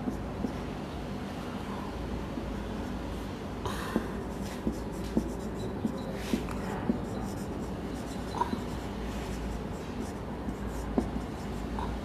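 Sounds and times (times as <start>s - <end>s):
marker scratching on whiteboard: 0.0s - 0.7s, 4.0s - 12.0s
steady low hum: 0.0s - 12.0s
marker tip tapping board: 4.0s - 7.2s, 10.8s - 11.2s.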